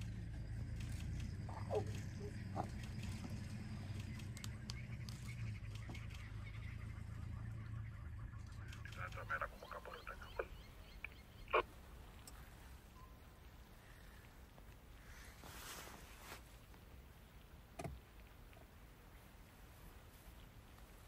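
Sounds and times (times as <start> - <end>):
low steady hum: 0.0 - 21.0
short bird calls: 1.5 - 12.7.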